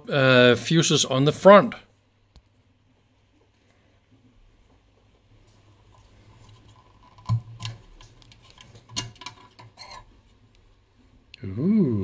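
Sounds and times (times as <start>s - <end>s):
metallic clicks and knocks: 7.0s - 10.0s.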